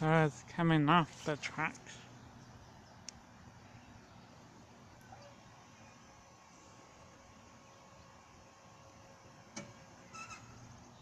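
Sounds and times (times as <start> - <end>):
faint outdoor background: 0.0 - 11.0
faint high squeak: 10.0 - 10.6.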